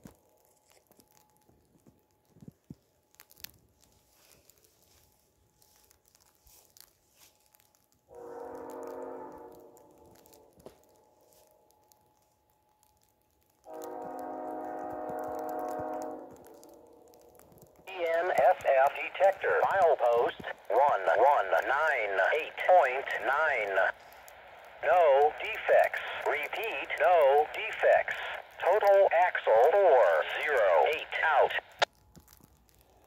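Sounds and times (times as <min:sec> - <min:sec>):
train air horn blasts: 0:08.1 - 0:10.0, 0:13.7 - 0:16.9.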